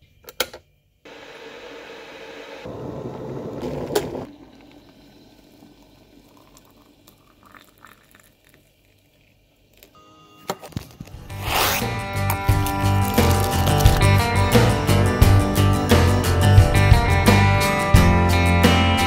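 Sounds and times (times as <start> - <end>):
electric kettle clicking off: 1.1 - 7.0
acoustic guitar music: 10.6 - 19.0.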